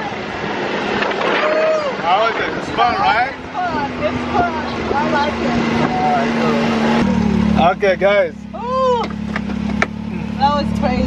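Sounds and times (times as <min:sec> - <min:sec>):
dune buggy engine running: 0:00.0 - 0:11.0
faint voices: 0:01.2 - 0:09.1.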